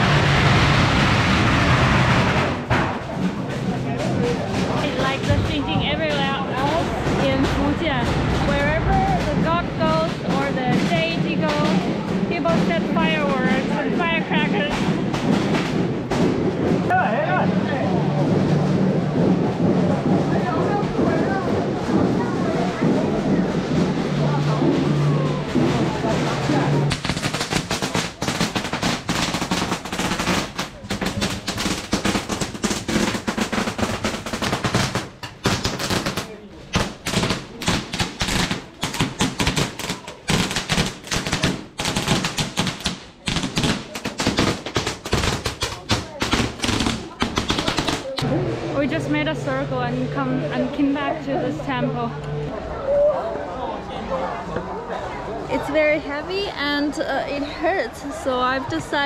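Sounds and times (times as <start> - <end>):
firecrackers going off: 0.0 - 51.6.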